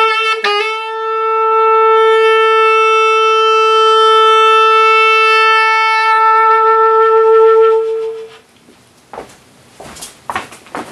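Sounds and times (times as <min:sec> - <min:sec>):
saxophone long held note: 0:00.0 - 0:08.4.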